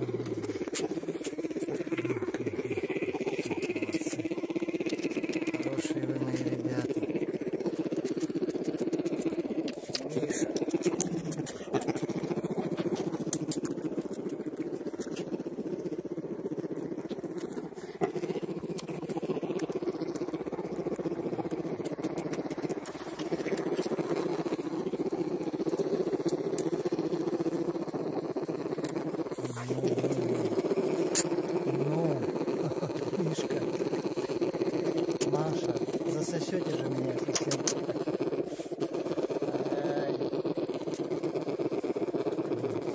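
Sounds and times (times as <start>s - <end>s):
bear cubs humming while suckling: 0.0s - 42.9s.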